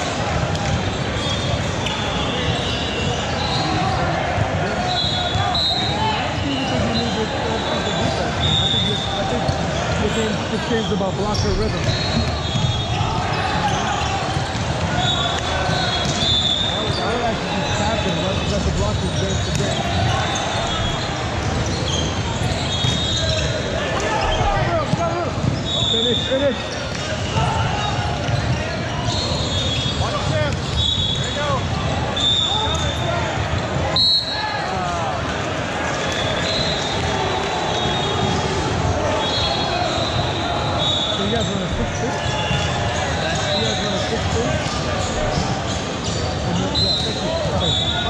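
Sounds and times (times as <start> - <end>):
many voices talking and calling: 0.0 - 48.0
sneaker squeaks on hardwood: 4.8 - 31.6.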